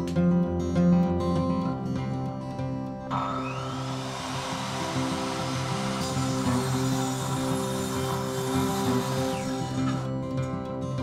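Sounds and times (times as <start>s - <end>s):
acoustic guitar music: 0.0s - 3.3s, 4.3s - 11.0s
saw cutting wood: 3.1s - 10.2s
miter saw whining: 3.1s - 10.3s.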